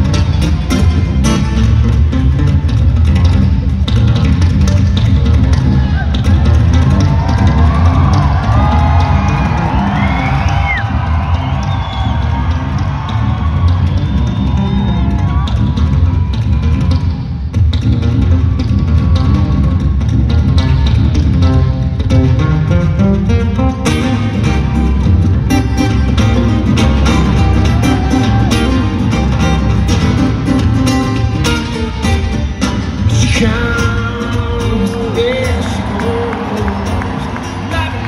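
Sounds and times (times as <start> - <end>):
acoustic guitar playing: 0.0 - 9.8, 20.5 - 38.0
crowd cheering and whooping: 5.6 - 17.3, 18.0 - 21.3, 23.8 - 38.0.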